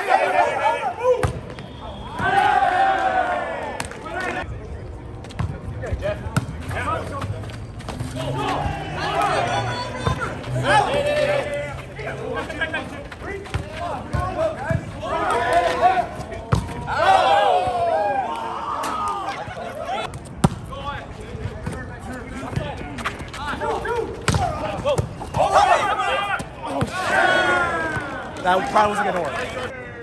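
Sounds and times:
players shouting: 0.0s - 4.5s, 8.0s - 20.1s, 20.7s - 30.0s.

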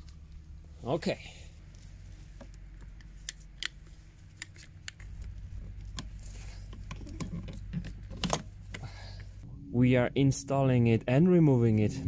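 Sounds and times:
faint low hum: 0.0s - 12.0s
fuel filter clicks and taps: 4.4s - 8.8s.

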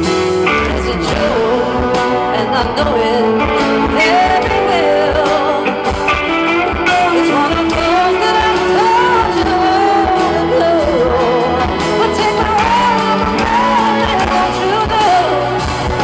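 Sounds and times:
acoustic guitar and band: 0.0s - 16.0s
female vocalist singing: 0.4s - 16.0s.

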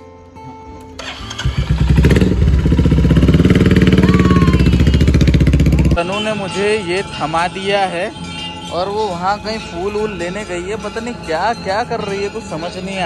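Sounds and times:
motorcycle engine running: 1.0s - 6.1s.

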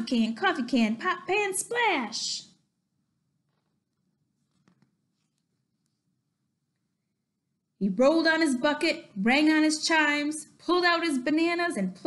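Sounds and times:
book page turning: 3.5s - 6.0s.

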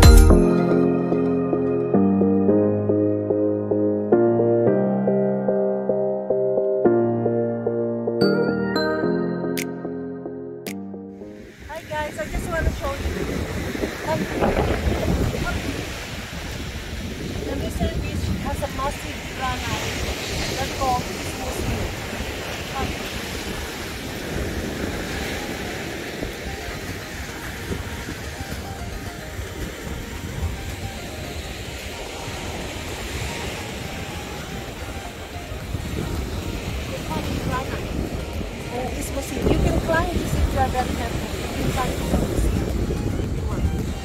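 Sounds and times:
surf waves on sandy beach: 11.2s - 44.0s
wind rumbling on microphone: 11.3s - 44.0s.

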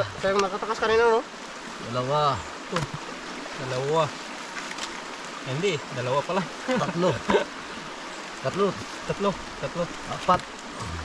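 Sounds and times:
creek water flowing: 0.0s - 11.0s
man's short vocal sound: 10.8s - 11.0s.

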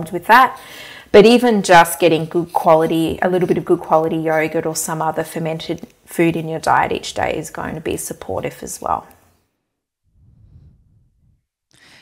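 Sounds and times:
soft breathing: 0.6s - 1.1s, 10.1s - 12.0s.

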